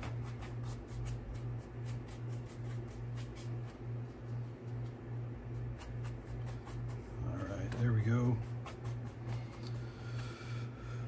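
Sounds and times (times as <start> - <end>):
paintbrush scrubbing surface: 0.0 - 3.8, 5.6 - 7.3, 8.0 - 9.9.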